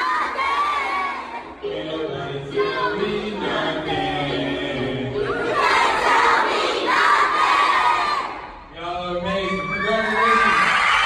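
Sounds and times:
crowd of children shouting and cheering: 0.0 - 1.6, 5.2 - 8.6, 9.3 - 11.0.

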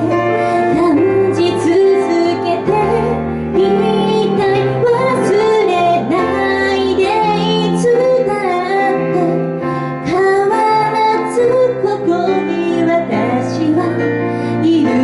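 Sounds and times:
woman singing into a microphone: 0.0 - 15.0.

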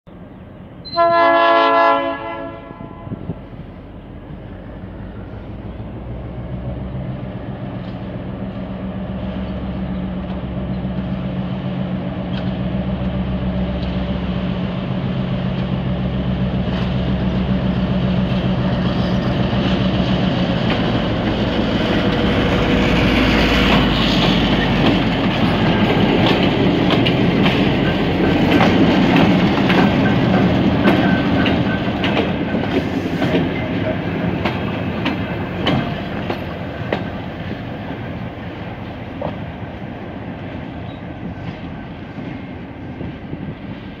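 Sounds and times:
locomotive engine drone: 3.2 - 44.0
wheels clicking over rail joints: 23.1 - 38.2.

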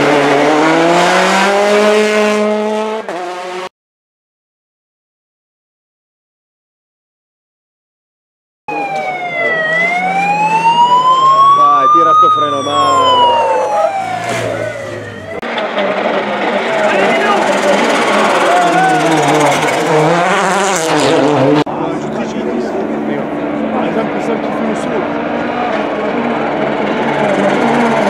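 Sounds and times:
car passing at speed: 0.0 - 3.7, 12.9 - 28.0
rally car engine at full throttle: 0.0 - 3.7, 8.8 - 28.0.

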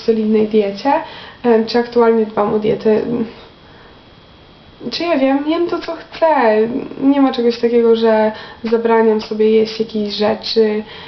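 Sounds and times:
woman speaking: 0.0 - 3.5, 4.8 - 11.0
faint room hiss: 0.0 - 11.0.

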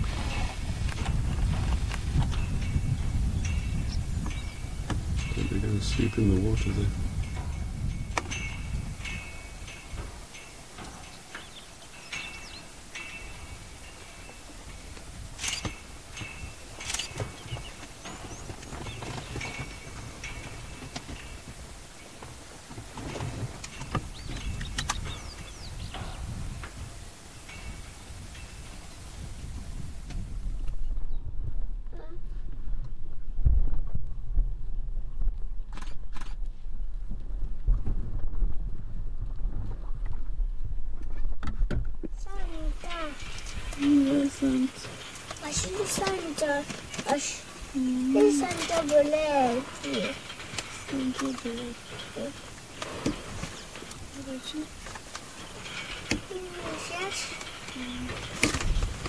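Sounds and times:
low wind rumble on microphone: 0.0 - 59.0.

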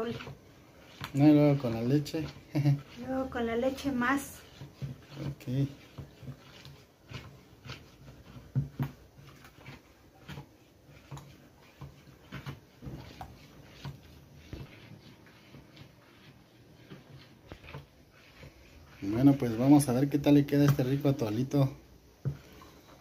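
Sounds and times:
spoon stirring in plastic bowl: 0.0 - 23.0.

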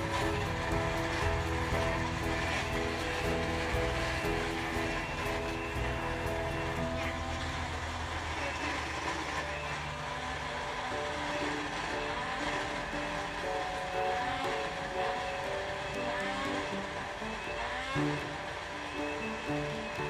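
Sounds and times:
background music: 0.0 - 20.0
blender motor running: 0.0 - 20.0.

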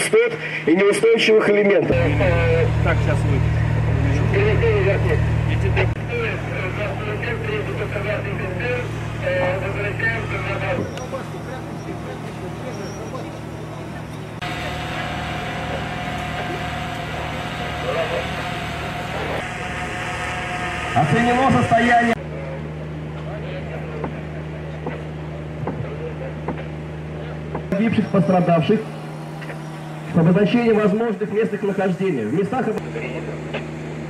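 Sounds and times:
people's voices: 0.0 - 33.7
engine running: 1.6 - 34.0
steady higher whine: 1.8 - 24.1, 27.7 - 34.0.

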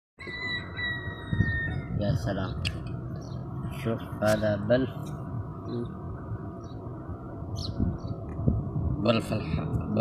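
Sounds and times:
low continuous rumble: 0.2 - 10.0.

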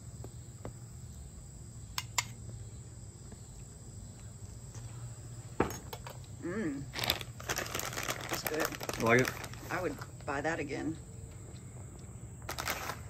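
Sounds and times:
high insect trill: 0.0 - 13.0.

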